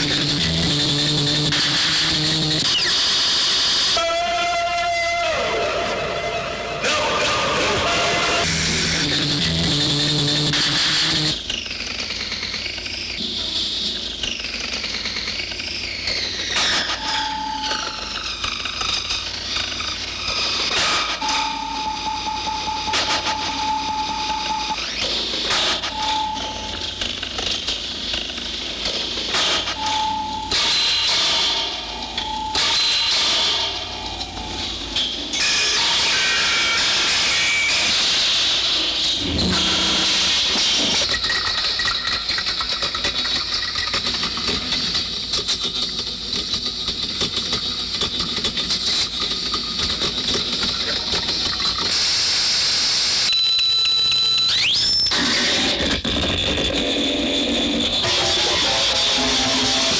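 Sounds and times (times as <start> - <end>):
rising whistle-like tone: 25.8 - 26.8, 53.2 - 55.2
harsh noise music: 55.8 - 59.9.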